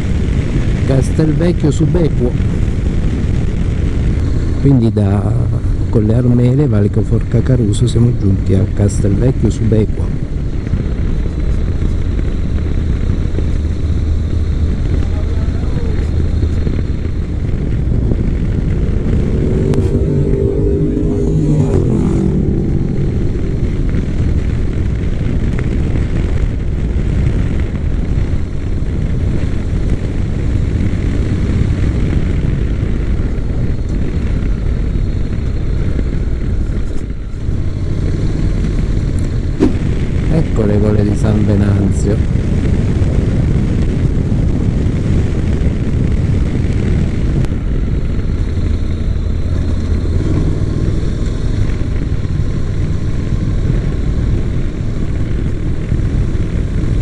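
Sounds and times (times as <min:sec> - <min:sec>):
motorcycle engine running: 0:00.0 - 0:57.0
wind rush on microphone: 0:00.0 - 0:57.0.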